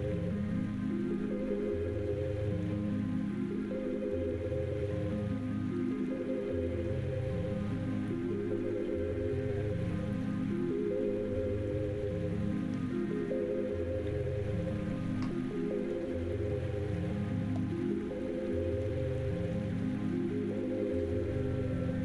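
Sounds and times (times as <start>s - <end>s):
calm instrumental music: 0.0s - 22.0s.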